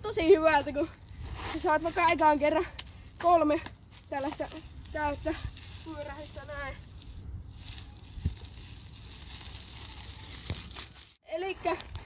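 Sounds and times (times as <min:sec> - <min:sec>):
wind rumble on microphone: 0:04.4 - 0:10.1.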